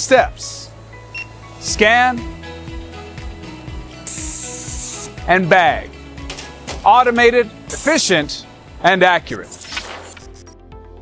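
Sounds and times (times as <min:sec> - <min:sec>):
background music: 0:00.0 - 0:11.0
machine air hiss: 0:04.0 - 0:05.2, 0:07.7 - 0:08.1.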